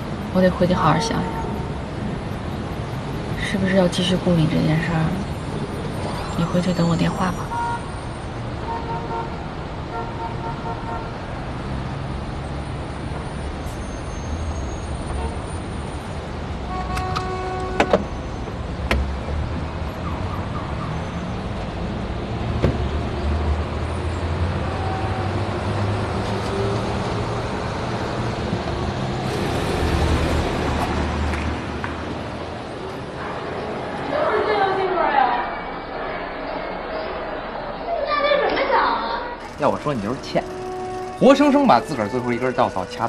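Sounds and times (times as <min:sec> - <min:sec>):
street traffic: 0:00.0 - 0:43.0
car horn toot: 0:07.5 - 0:08.0, 0:16.7 - 0:18.1, 0:39.7 - 0:43.0.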